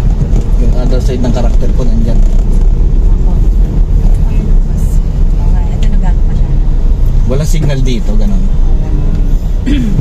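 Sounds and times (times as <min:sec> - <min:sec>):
car engine: 0:00.0 - 0:10.0
road noise: 0:00.0 - 0:10.0.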